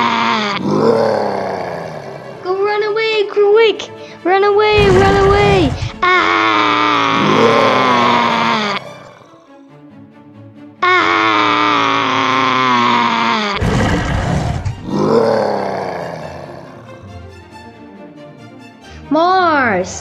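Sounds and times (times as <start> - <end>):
dinosaur roars: 0.0 - 2.5, 4.7 - 9.4, 10.9 - 16.9
background music: 0.0 - 20.0.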